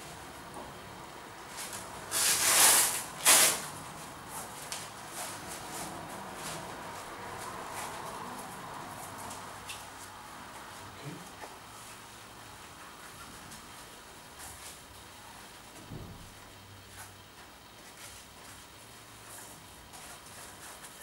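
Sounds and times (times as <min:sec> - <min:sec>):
velcro strap ripping: 0:02.1 - 0:03.7.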